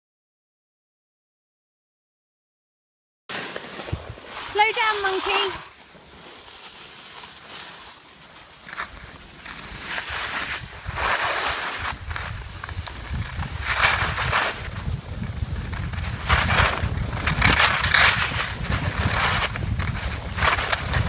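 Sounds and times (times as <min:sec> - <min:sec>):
skis scraping over snow: 0:03.3 - 0:21.0
wind rumbling on microphone: 0:03.8 - 0:05.7, 0:08.9 - 0:21.0.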